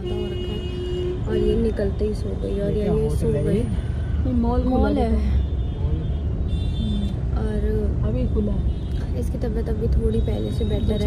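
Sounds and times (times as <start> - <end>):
road noise: 0.0 - 11.0.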